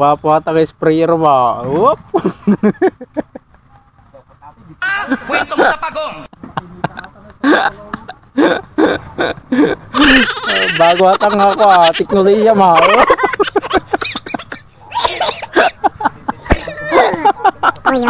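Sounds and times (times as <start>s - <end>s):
man talking: 10.1s - 13.4s.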